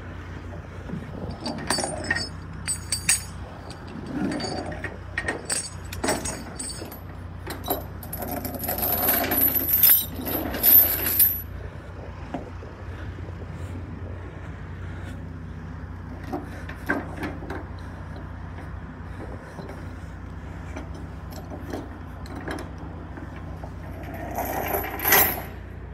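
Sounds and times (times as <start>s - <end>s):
steady low hum: 0.0s - 25.9s
chain clinking and rattling on wood: 0.9s - 11.5s, 20.8s - 25.6s.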